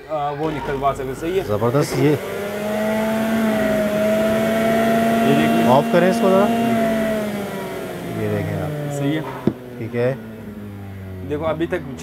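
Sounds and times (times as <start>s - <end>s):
juicer motor humming: 0.5s - 12.0s.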